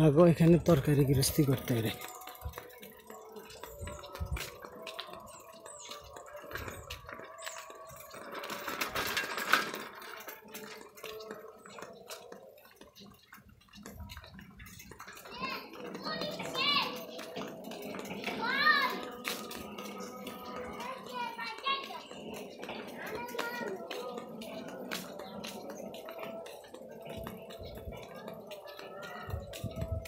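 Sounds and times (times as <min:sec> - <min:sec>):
people talking: 0:00.0 - 0:02.2, 0:13.8 - 0:30.0
child's voice: 0:14.1 - 0:17.5, 0:18.2 - 0:19.2, 0:20.4 - 0:24.2.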